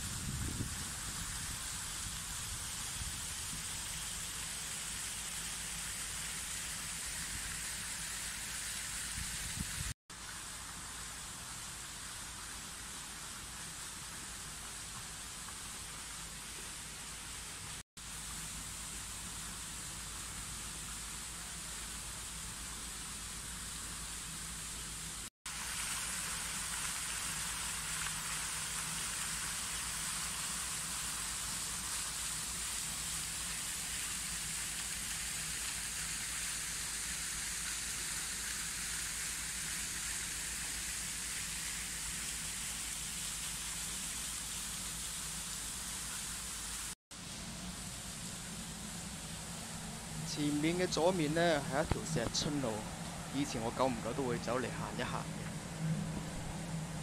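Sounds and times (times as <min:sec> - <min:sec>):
steady outdoor hiss: 0:00.0 - 0:57.0.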